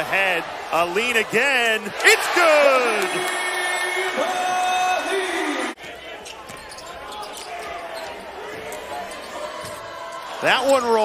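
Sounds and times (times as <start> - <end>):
crowd cheering and shouting: 0.0 - 6.0, 7.0 - 11.0.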